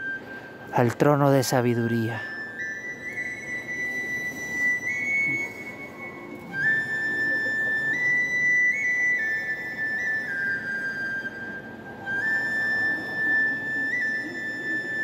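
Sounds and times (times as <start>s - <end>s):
flute-like melody: 0.0s - 15.0s.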